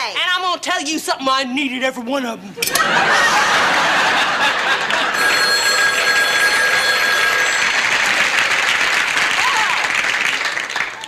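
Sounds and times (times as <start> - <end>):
studio audience laughing: 2.6 - 5.3
telephone bell ringing: 4.9 - 9.1.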